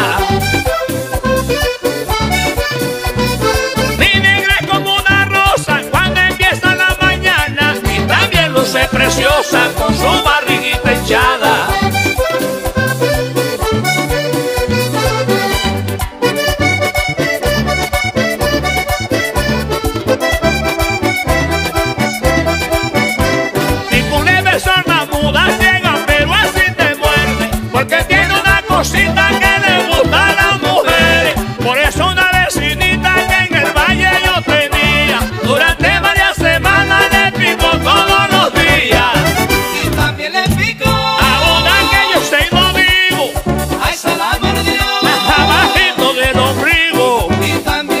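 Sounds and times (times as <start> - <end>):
bass and percussion beat: 0.0 - 48.0
button accordion melody: 0.0 - 48.0.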